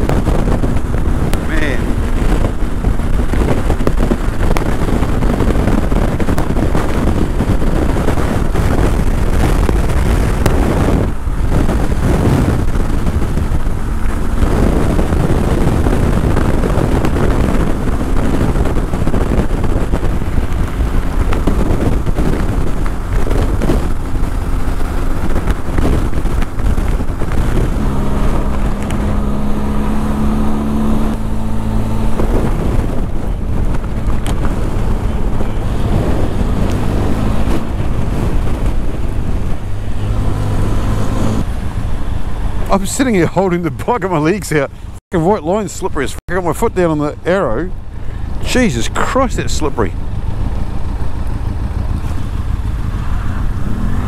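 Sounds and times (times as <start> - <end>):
motorcycle engine running: 0.0 - 45.0, 47.2 - 54.0
wind rushing over microphone: 0.0 - 54.0.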